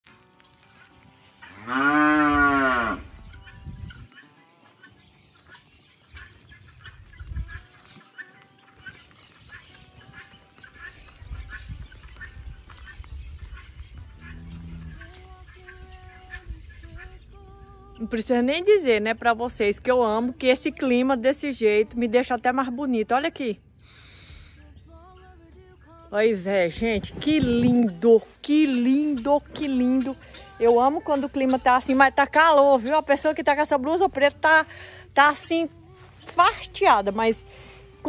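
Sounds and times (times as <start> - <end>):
cow mooing: 1.4 - 3.2, 14.1 - 15.1.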